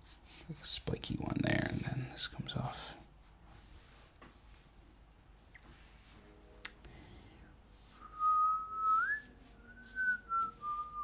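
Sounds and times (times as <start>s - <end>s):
person whistling a tune: 8.0s - 11.0s.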